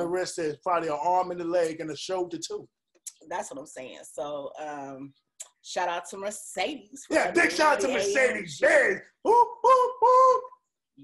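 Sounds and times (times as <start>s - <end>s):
man making high boop sounds: 9.2s - 10.6s.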